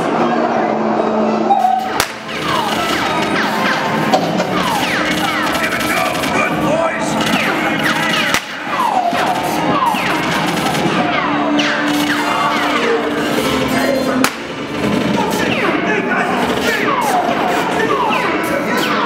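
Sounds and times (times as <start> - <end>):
gunshot: 2.0 - 3.0, 8.3 - 8.6, 14.2 - 14.6.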